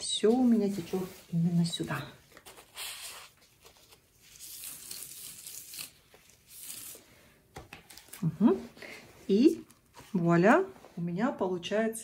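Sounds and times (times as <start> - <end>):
paper towel rustling: 0.0 - 4.9.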